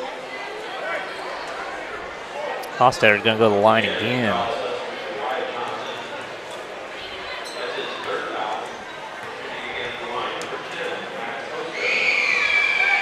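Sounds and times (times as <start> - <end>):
crowd chatter echoing: 0.0 - 13.0.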